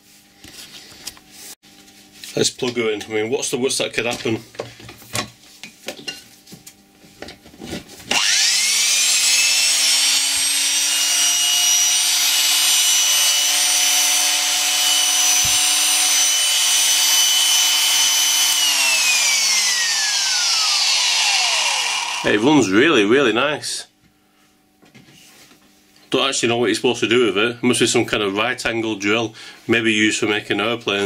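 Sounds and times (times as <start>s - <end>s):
electric drill motor whining: 8.1s - 22.7s.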